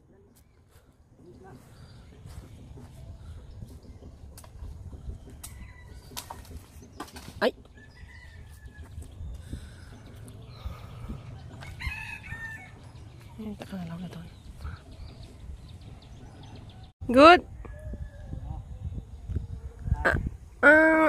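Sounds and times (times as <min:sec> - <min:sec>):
outdoor background noise: 0:00.0 - 0:21.0
rooster crowing: 0:11.4 - 0:12.9.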